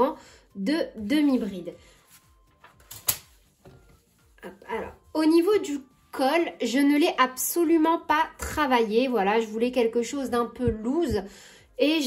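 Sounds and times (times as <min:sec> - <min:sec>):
notebook handling noise: 0:02.1 - 0:03.7.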